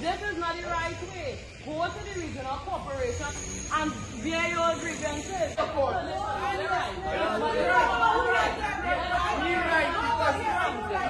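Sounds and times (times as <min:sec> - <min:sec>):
crowd arguing: 0:00.0 - 0:11.0.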